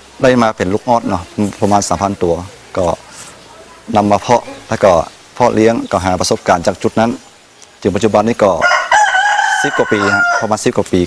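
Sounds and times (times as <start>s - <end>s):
man talking: 0.2s - 3.2s, 3.8s - 8.7s, 9.5s - 11.0s
rooster crowing: 8.6s - 10.6s.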